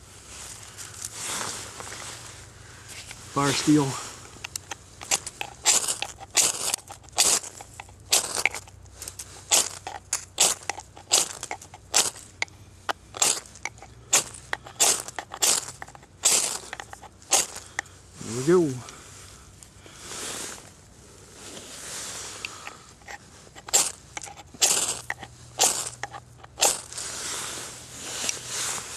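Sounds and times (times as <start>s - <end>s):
knife scraping fire steel: 4.5s - 18.4s, 21.4s - 28.9s.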